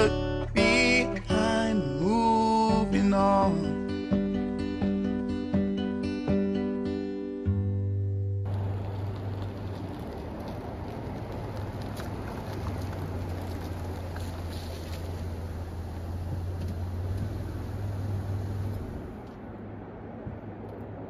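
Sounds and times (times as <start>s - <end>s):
car engine humming: 8.4s - 21.0s
tyres rolling on wet gravel: 8.5s - 19.4s.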